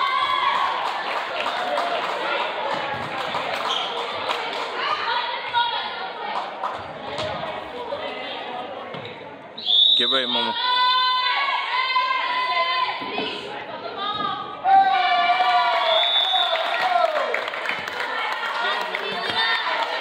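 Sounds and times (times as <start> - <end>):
players and spectators chattering: 0.0 - 20.0.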